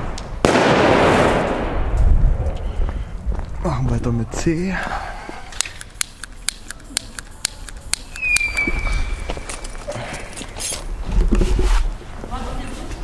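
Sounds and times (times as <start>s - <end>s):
short falling whistle: 8.2s - 9.3s.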